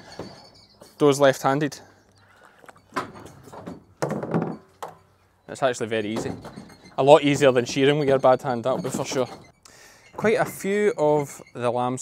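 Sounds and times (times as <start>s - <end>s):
metal sheep handler clunking: 2.9s - 12.0s.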